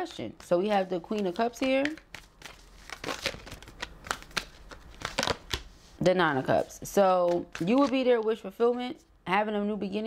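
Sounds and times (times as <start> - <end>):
cards being shuffled: 0.6 - 6.0, 7.2 - 8.1.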